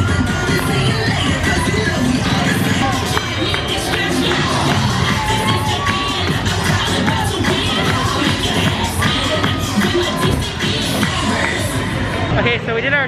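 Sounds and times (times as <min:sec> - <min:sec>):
upbeat music with steady beat: 0:00.0 - 0:12.4
young voices shouting and cheering: 0:00.0 - 0:12.4.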